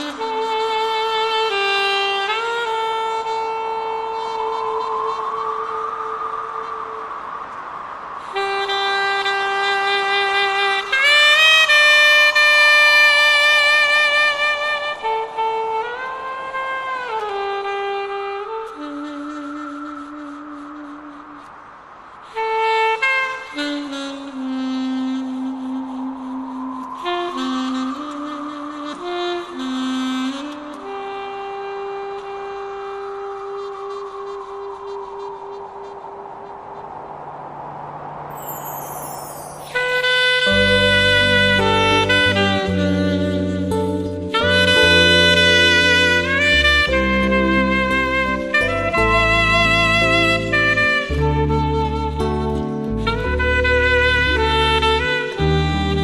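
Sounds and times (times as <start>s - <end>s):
reed wind instrument melody: 0.0s - 56.0s
reed instrument long notes: 38.3s - 56.0s.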